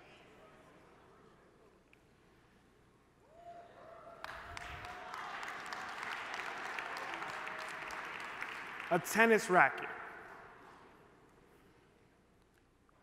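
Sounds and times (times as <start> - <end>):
audience applauding: 4.2 - 10.4.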